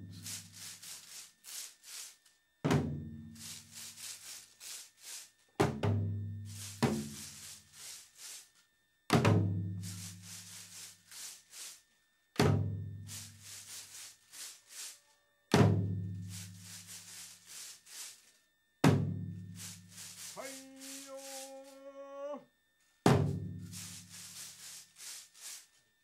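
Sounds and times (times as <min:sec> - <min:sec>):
long held tone: 0:20.3 - 0:22.5.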